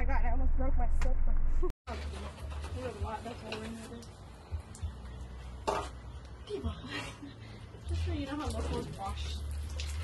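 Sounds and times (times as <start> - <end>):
low background rumble: 0.0 - 1.7
water splashing: 7.9 - 10.0.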